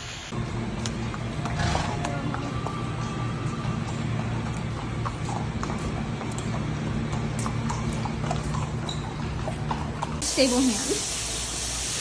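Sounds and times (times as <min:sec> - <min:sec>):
steady low hum: 0:00.2 - 0:10.3
horse hooves walking on dirt: 0:00.3 - 0:10.2.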